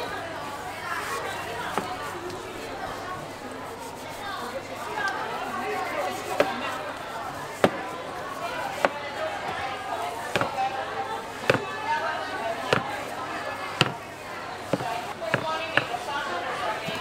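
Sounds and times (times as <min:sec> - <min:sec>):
background chatter of voices: 0:00.0 - 0:17.0.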